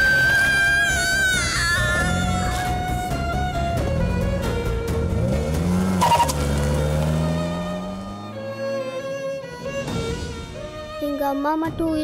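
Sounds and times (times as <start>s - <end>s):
car engine rising in pitch: 0.0s - 10.1s
film soundtrack music: 0.0s - 12.0s
brief tyre screech: 6.0s - 6.5s.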